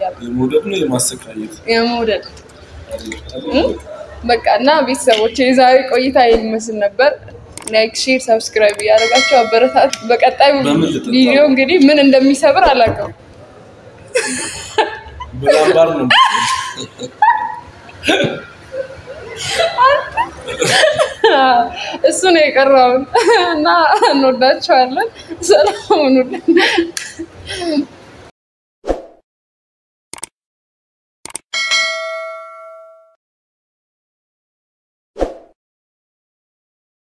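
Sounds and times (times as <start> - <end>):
woman speaking: 1.6 - 2.4, 3.4 - 13.2, 15.1 - 17.6, 21.2 - 26.8
bell ding: 8.9 - 10.5, 31.6 - 33.2
woman laughing: 10.0 - 11.6, 14.1 - 22.2, 22.9 - 27.9.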